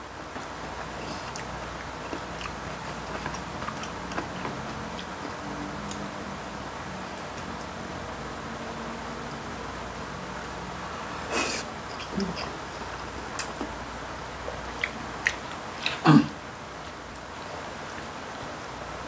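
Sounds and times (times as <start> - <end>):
low room hum: 0.0 - 19.0
soft chewing: 0.2 - 6.2, 11.2 - 18.1.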